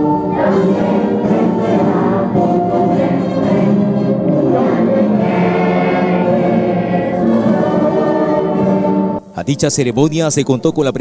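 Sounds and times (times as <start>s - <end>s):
children singing together: 0.0s - 9.2s.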